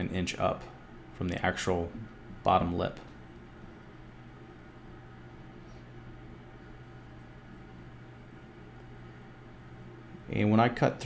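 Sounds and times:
faint low hum with hiss: 0.0 - 11.0.

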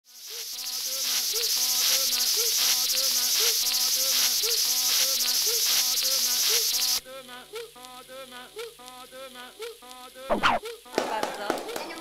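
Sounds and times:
high insect-like chirring: 0.1 - 7.8
short pitched tones: 10.3 - 10.6.

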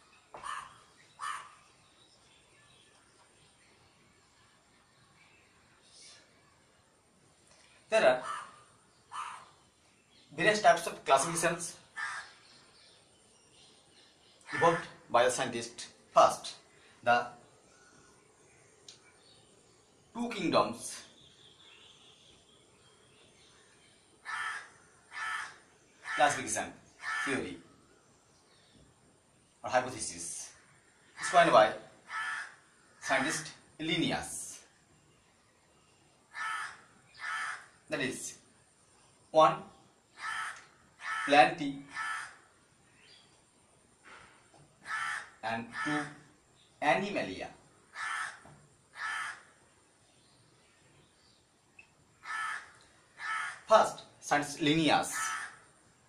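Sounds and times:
bird harsh calls: 0.0 - 3.3, 7.9 - 15.5, 20.8 - 28.8, 29.9 - 33.6, 36.2 - 38.5, 40.1 - 43.4, 44.1 - 51.4, 52.1 - 55.8
crow cawing: 0.3 - 1.7, 8.2 - 9.6, 11.9 - 12.5, 24.2 - 26.4, 27.0 - 27.4, 32.0 - 33.0, 36.3 - 37.9, 40.1 - 42.6, 44.8 - 46.3, 47.8 - 49.6, 52.2 - 53.7, 55.1 - 55.8.

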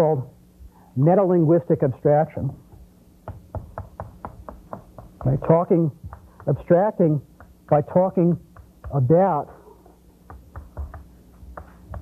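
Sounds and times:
chalk tapping on a blackboard: 2.6 - 12.0.

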